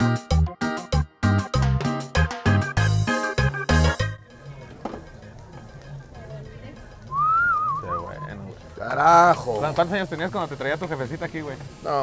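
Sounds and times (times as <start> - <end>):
faint background music: 3.0 - 12.0
whistle: 7.1 - 8.5.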